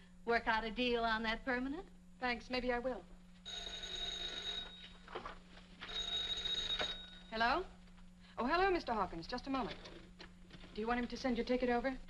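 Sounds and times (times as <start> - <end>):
telephone bell ringing: 3.5 - 5.0, 5.8 - 7.4.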